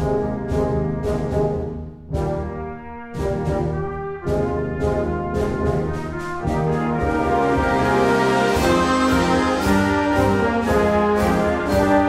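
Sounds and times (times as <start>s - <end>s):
brass chords: 0.0s - 12.0s.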